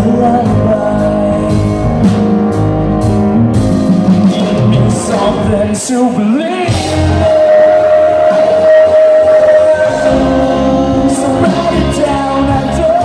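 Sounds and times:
person singing: 0:00.0 - 0:02.5, 0:03.9 - 0:13.0
drums: 0:00.0 - 0:13.0
electric guitar: 0:00.0 - 0:13.0
grand piano: 0:00.0 - 0:13.0.

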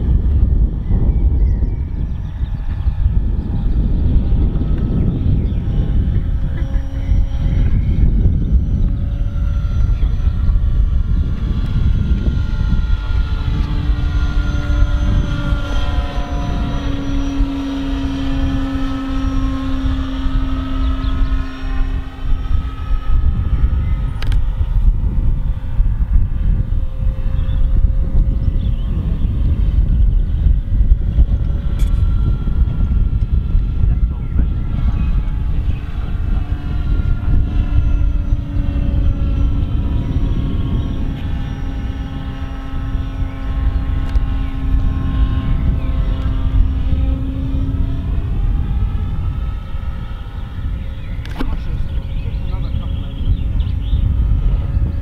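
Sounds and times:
model aircraft motor whine: 0:00.0 - 0:55.0.

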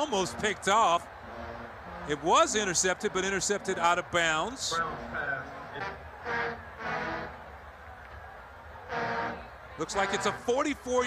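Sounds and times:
marching band playing held notes: 0:01.1 - 0:03.9, 0:04.7 - 0:07.5, 0:08.8 - 0:10.9.

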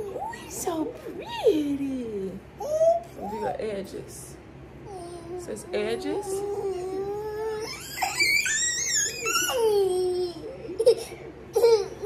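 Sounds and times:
toddler whining and squealing: 0:04.9 - 0:10.5.

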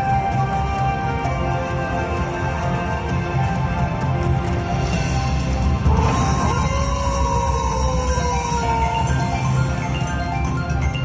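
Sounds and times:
slot machine music: 0:04.0 - 0:11.0.

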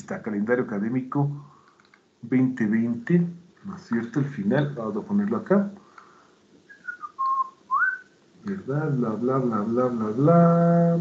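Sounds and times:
person whistling: 0:06.7 - 0:08.1.

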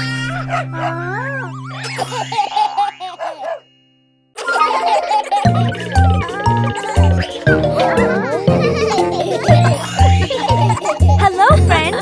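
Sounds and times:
cartoon puppy crying: 0:00.0 - 0:03.6, 0:04.4 - 0:12.0
held music chord: 0:05.4 - 0:12.0.

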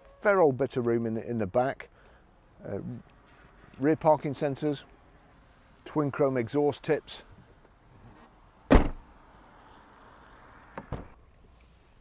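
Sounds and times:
car tailgate slamming shut: 0:08.7 - 0:09.0.

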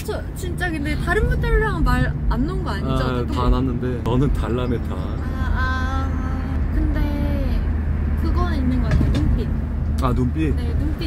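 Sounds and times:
people talking: 0:00.0 - 0:07.6, 0:08.2 - 0:11.0
car cabin road and engine rumble: 0:00.0 - 0:11.0.

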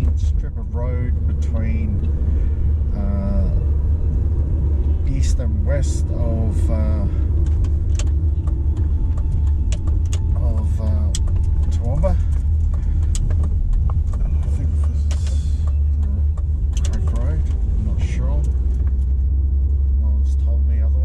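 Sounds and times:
car engine and tyre rumble: 0:00.0 - 0:21.0
light clicks and rattles: 0:06.9 - 0:19.9.

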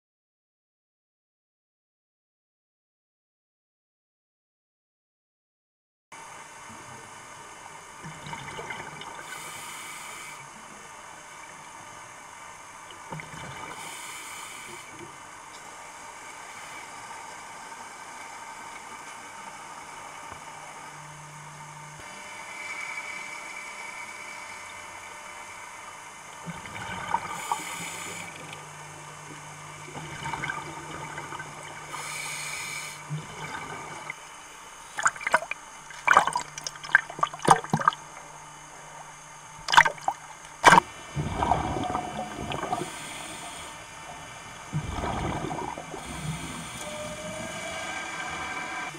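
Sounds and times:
faint low hum: 0:06.6 - 0:48.9
diver breathing through regulator: 0:09.2 - 0:10.4, 0:13.8 - 0:15.0, 0:27.3 - 0:28.5, 0:31.9 - 0:33.2, 0:41.4 - 0:44.1, 0:44.8 - 0:48.9
exhaled bubbles hissing: 0:13.0 - 0:15.2, 0:26.4 - 0:48.9
water noise: 0:26.2 - 0:48.9.

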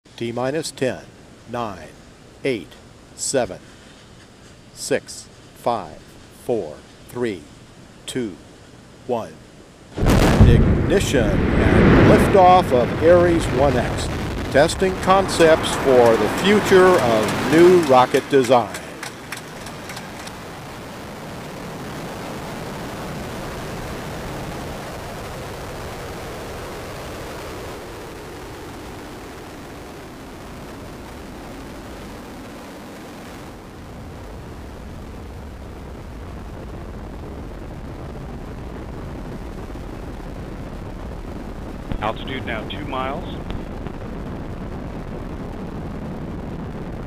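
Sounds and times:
rocket motor roaring: 0:10.0 - 0:20.6.

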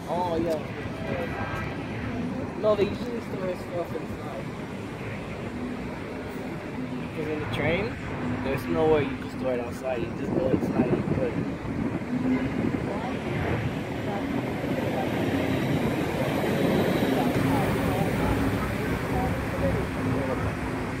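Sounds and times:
city background noise: 0:00.0 - 0:21.0
distant subway train rumbling: 0:10.1 - 0:20.7.

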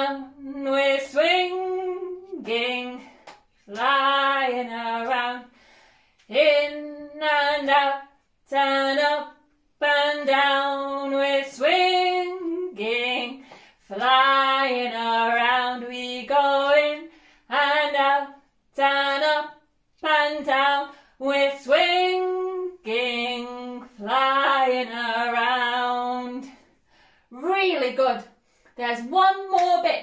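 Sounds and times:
woman singing unaccompanied: 0:00.0 - 0:05.6, 0:06.3 - 0:26.7, 0:27.3 - 0:30.0.

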